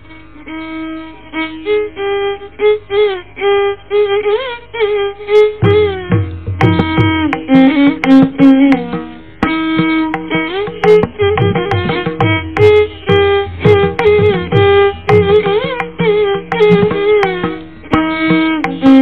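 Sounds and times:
violin playing over drone: 0.0s - 19.0s.

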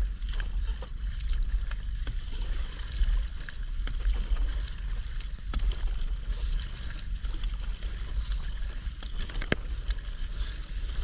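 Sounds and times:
paddle strokes splashing: 0.0s - 11.0s
water slapping against kayak: 0.0s - 11.0s
wind rumble on microphone: 0.0s - 11.0s.

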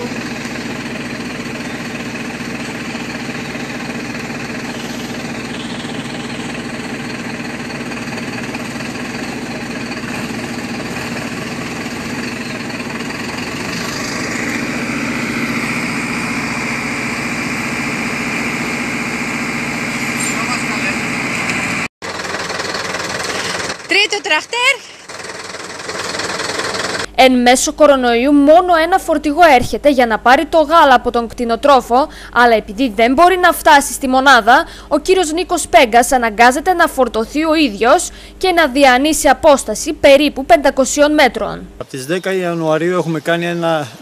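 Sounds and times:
high whine: 0.0s - 21.9s
heavy diesel engine labouring: 0.0s - 27.2s.

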